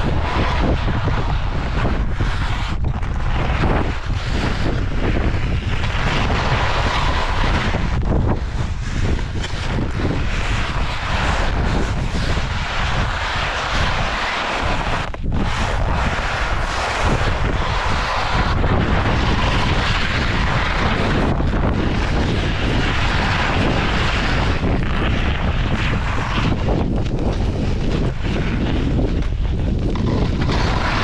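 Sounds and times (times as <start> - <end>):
skis scraping on snow: 0.0 - 31.0
wind rushing over microphone: 0.0 - 31.0.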